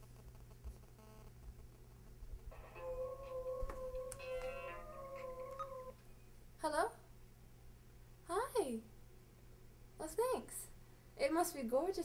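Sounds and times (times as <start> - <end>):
animal howling: 2.6 - 6.0.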